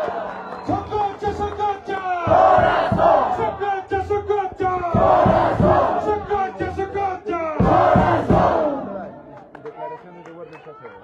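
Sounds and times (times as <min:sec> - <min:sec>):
crowd shouting: 0:00.0 - 0:09.3
scattered voices: 0:01.3 - 0:09.5.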